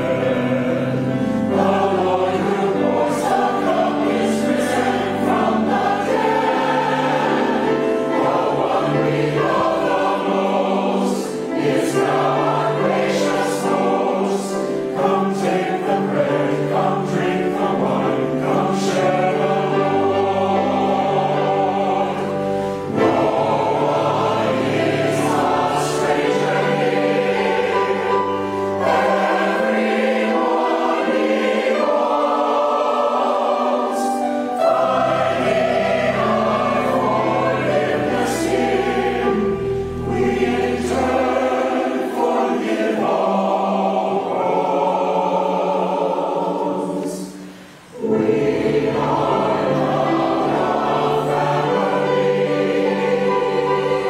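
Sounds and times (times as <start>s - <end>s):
choir singing a hymn: 0.0s - 54.0s
piano accompaniment: 0.0s - 54.0s.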